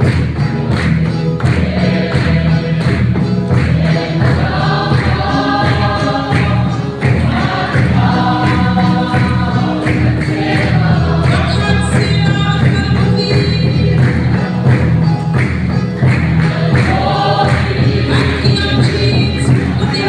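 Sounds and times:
congregation singing a hymn: 0:00.0 - 0:20.0
drum beating: 0:00.0 - 0:20.0
hands clapping: 0:00.0 - 0:20.0.

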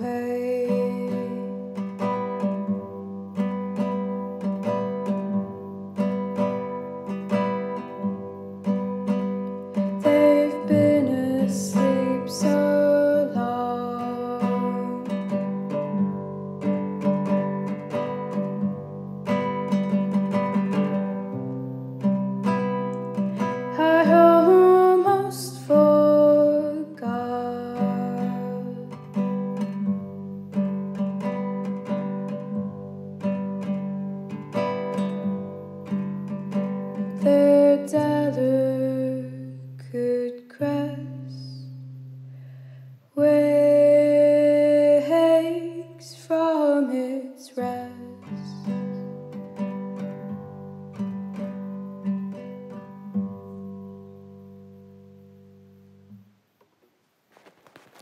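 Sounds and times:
acoustic guitar picking: 0:00.0 - 0:56.4.

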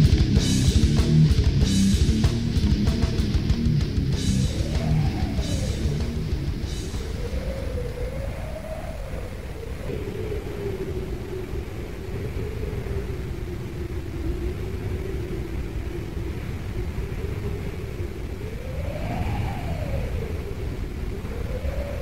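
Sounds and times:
dense low rumble: 0:00.0 - 0:07.2
wailing drone tone: 0:00.0 - 0:09.0.

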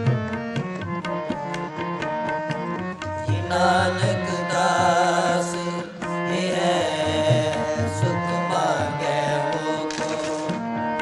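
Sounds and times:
harmonium: 0:00.0 - 0:11.0
tabla strokes: 0:00.0 - 0:11.0
man singing ornamented line: 0:03.2 - 0:10.6.

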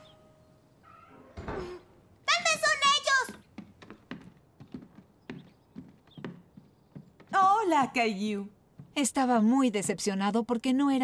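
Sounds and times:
cartoon footsteps soft taps: 0:02.3 - 0:09.3.

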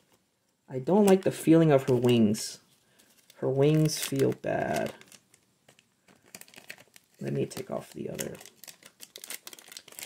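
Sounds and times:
plastic wrap crinkling: 0:00.9 - 0:10.0.

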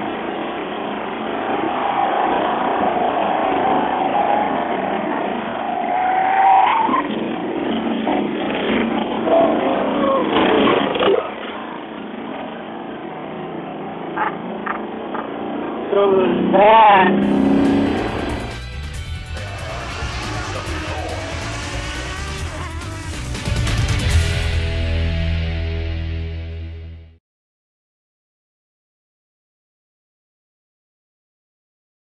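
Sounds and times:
car engine revving: 0:16.4 - 0:25.8.

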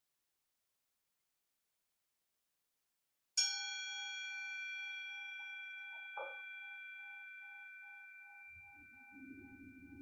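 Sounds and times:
metal singing bowl ringing: 0:03.4 - 0:10.0
soft knock: 0:06.2 - 0:06.4.

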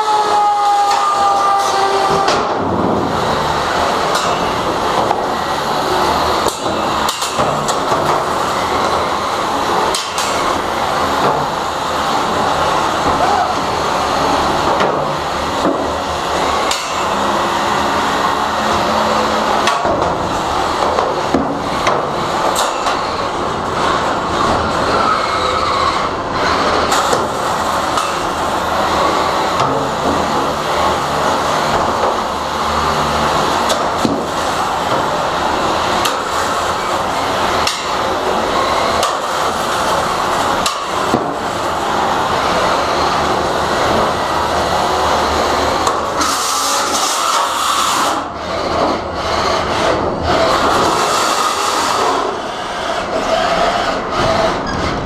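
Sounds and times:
harsh high-pitched scraping: 0:00.0 - 0:07.4, 0:22.6 - 0:29.6, 0:32.3 - 0:55.0.

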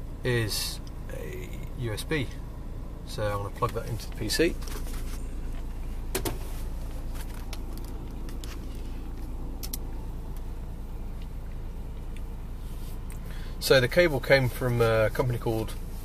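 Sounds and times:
diesel engine idling: 0:00.0 - 0:16.0
sharp clicks of cable: 0:09.6 - 0:10.4.

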